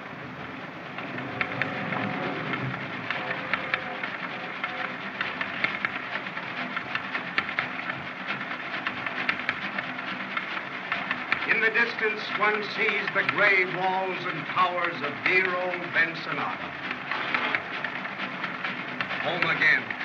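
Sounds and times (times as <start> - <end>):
freight car rolling on rails: 0.0 - 20.0
wheels clicking and knocking: 0.0 - 20.0.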